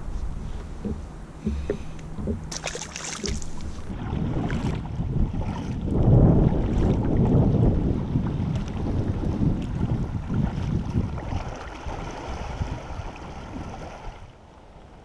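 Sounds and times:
kayak paddle in water: 0.0 - 15.0
wind rumble on microphone: 0.0 - 15.0.

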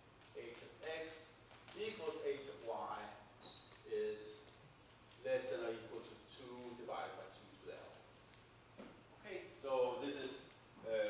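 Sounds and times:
man lecturing: 0.3 - 4.5, 5.2 - 8.1, 9.2 - 11.0.

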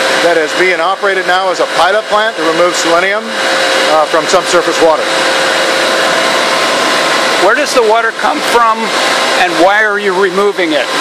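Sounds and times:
machinery steady rush: 0.0 - 11.0.

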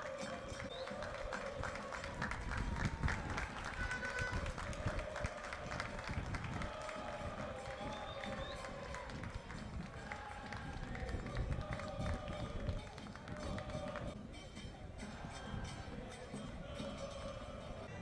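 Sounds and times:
distant crowd singing: 0.0 - 18.0.

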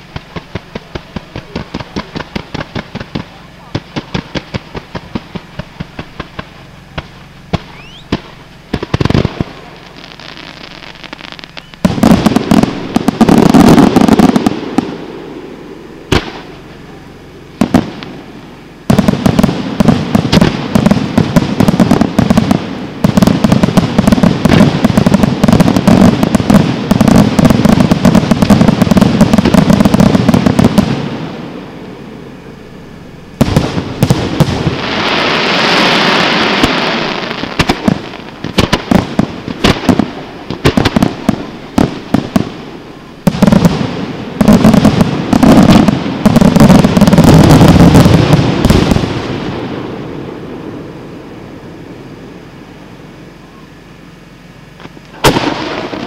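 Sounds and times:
firework shells bursting and crackling: 0.0 - 53.2, 54.6 - 56.0
firework hissing: 0.0 - 56.0.

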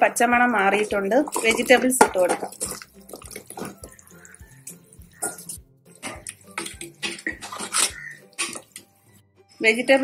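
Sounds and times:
ladle stirring in metal pot: 0.6 - 9.0
wet sloshing: 0.8 - 8.6.

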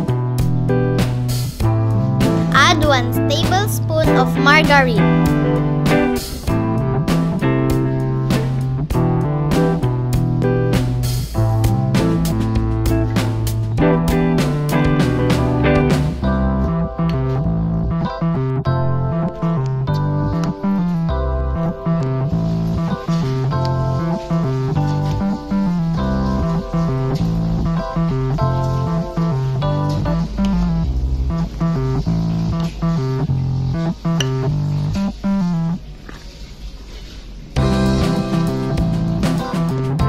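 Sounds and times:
guitar and bass instrumental music: 0.0 - 35.8, 37.6 - 40.0.

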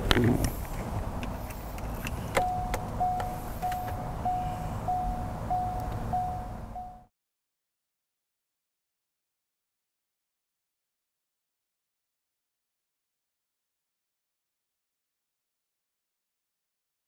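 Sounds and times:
low steady rumble: 0.0 - 7.1
car door warning chime: 2.4 - 7.1.

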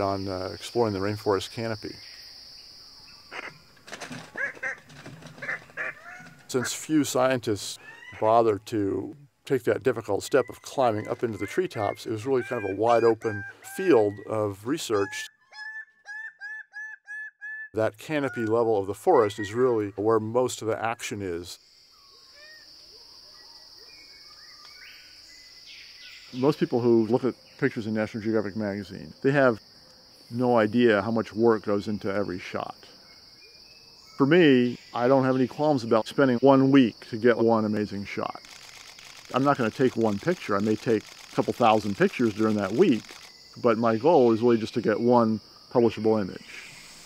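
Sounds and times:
high insect drone: 0.0 - 7.8, 20.7 - 47.0
honking bird calls: 3.2 - 8.5, 10.1 - 20.2
high-pitched insect drone: 34.5 - 47.0.

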